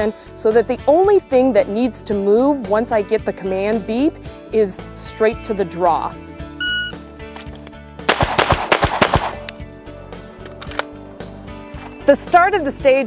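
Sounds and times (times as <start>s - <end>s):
background music: 0.0s - 13.0s
shot timer beep: 6.6s - 7.0s
pistol shots: 8.1s - 9.5s.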